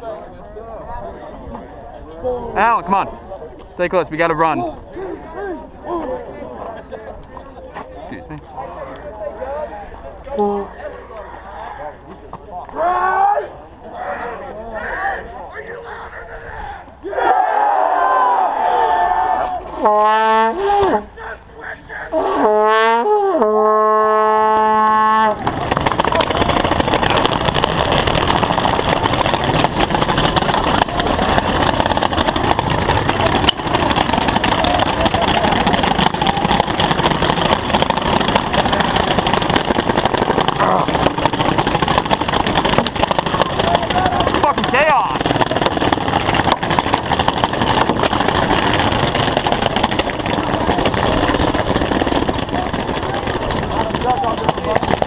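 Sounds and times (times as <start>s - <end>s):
crowd of players shouting: 12.7s - 19.8s, 32.8s - 39.4s
air horn blast: 19.8s - 21.1s, 22.2s - 25.4s.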